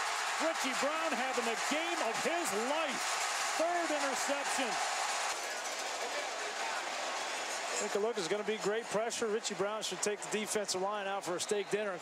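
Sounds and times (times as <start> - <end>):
stadium crowd voices: 0.0 - 12.0.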